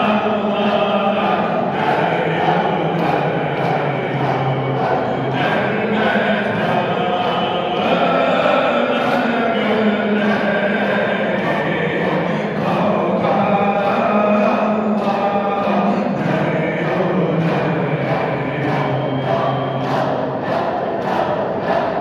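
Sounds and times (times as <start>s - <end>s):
devotional chanting voices: 0.0s - 22.0s.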